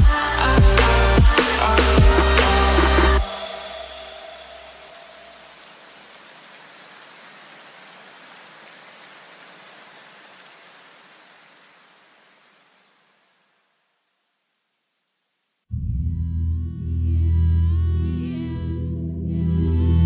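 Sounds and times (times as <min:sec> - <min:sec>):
music echo: 0:00.0 - 0:05.5
filtered white noise hiss: 0:00.0 - 0:15.7.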